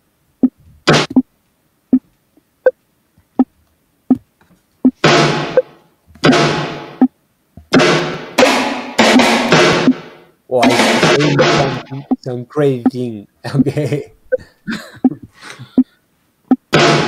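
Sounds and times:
sample hits and drum sounds: 0.4s - 1.3s, 4.8s - 14.4s, 15.0s - 15.9s, 16.5s - 17.0s.

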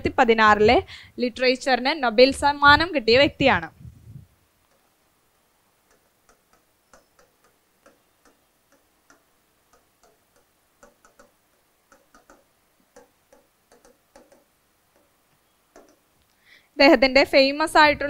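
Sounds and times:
marker tapping on whiteboard: 5.8s - 16.1s.

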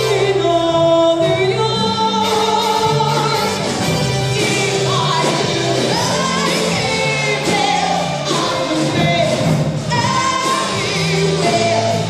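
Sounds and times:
band with string orchestra: 0.0s - 12.0s
woman singing into a microphone: 0.0s - 12.0s.

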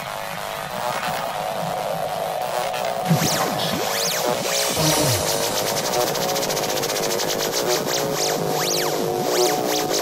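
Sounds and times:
pulsing synth riff: 3.1s - 7.3s
rising and falling synth sweep: 3.1s - 7.6s.

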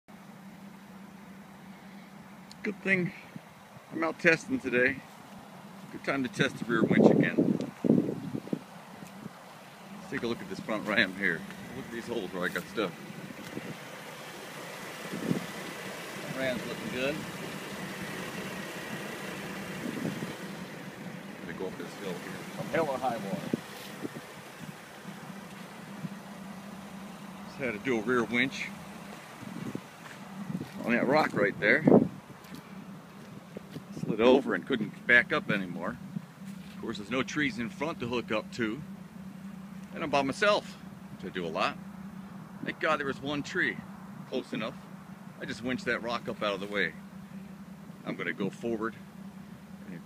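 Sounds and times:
vehicle engine idling: 0.0s - 50.0s.

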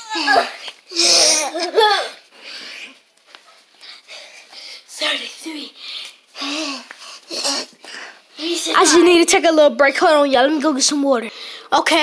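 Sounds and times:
child laughing: 0.0s - 2.2s.

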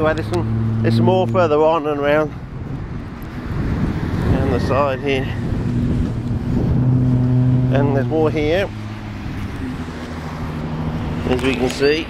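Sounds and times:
vehicle engine hum: 0.0s - 12.0s.

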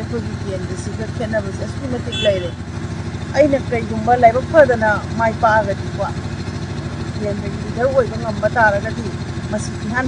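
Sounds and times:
woman speaking: 0.0s - 2.6s, 3.3s - 6.2s, 7.2s - 10.0s
vehicle engine idling: 0.0s - 10.0s.

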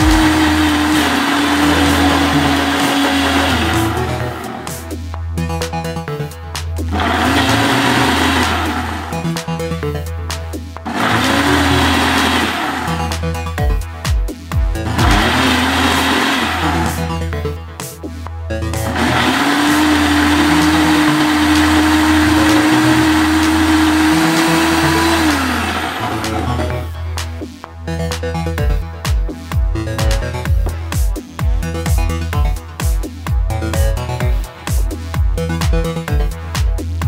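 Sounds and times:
blender motor spinning: 0.0s - 5.0s, 6.9s - 9.4s, 10.9s - 13.4s, 14.8s - 17.3s, 18.8s - 27.0s
background music with steady beat: 0.0s - 37.0s.

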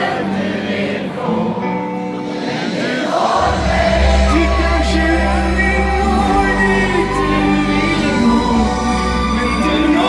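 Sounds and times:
crowd singing along: 0.0s - 10.0s
live pop-rock band: 0.0s - 10.0s
deep bass: 3.4s - 10.0s.

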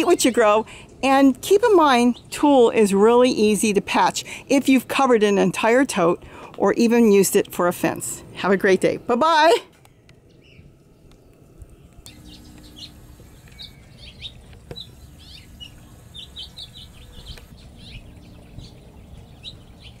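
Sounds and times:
small birds chirping: 9.8s - 20.0s.

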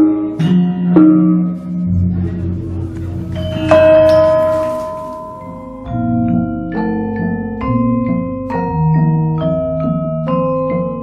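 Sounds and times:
low sustained ringing: 1.4s - 7.6s
pot gong strikes ringing: 3.0s - 5.8s.

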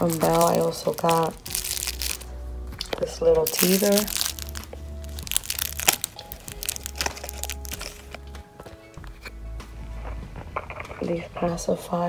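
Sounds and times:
toy crinkling and crackling: 0.0s - 8.3s
faint music: 0.0s - 12.0s.

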